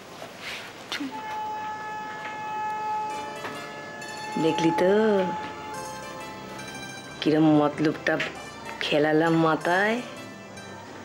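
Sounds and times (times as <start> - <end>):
held electronic chord: 1.1 - 11.0.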